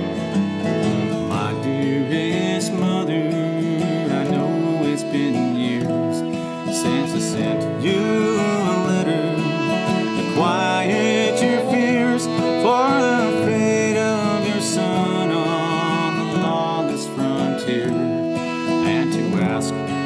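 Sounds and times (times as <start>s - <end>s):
acoustic band playing: 0.0s - 20.0s
guitar chords: 0.0s - 20.0s
wavering sliding melody: 0.0s - 20.0s.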